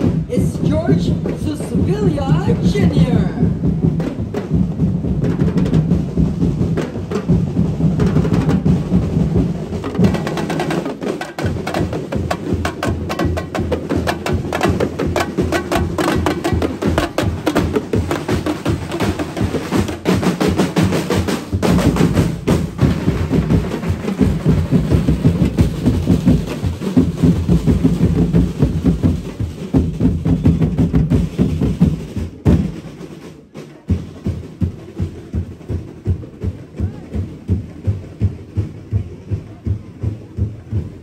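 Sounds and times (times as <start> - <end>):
drum ensemble playing fast beat: 0.0 - 41.0.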